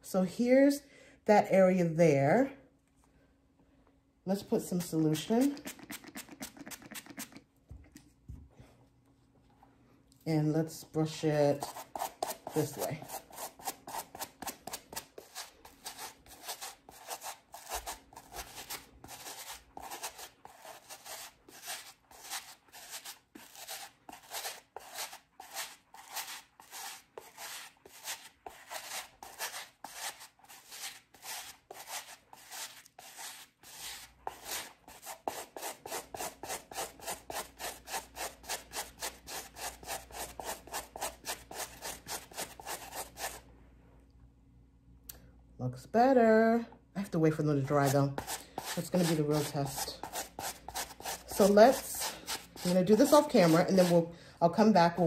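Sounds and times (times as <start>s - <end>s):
brush scrubbing a shoe: 5.1s - 7.4s, 11.1s - 43.4s, 47.8s - 54.0s.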